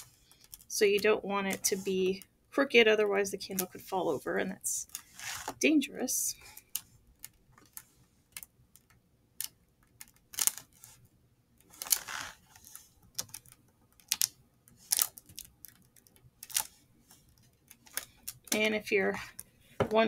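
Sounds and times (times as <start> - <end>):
wax sheet rustling: 3.7 - 5.7, 11.7 - 12.9.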